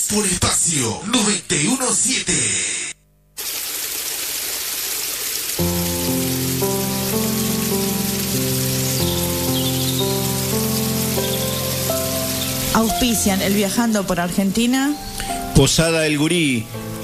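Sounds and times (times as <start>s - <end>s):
rain-like hiss: 3.4s - 17.0s
slow sustained music chords: 5.6s - 17.0s.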